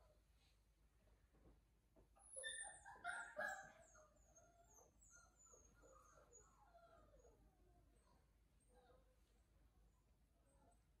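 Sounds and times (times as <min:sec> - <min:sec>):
puppy whining: 0:02.2 - 0:07.4.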